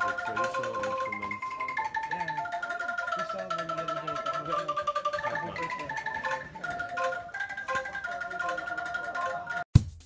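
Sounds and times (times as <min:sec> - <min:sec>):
bamboo angklung rattling: 0:00.0 - 0:09.6.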